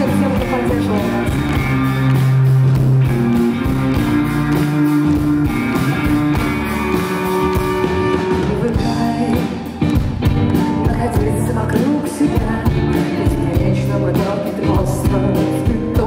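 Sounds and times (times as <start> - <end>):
drums: 0.0 - 16.0
guitar: 0.0 - 16.0
live rock band: 0.0 - 16.0.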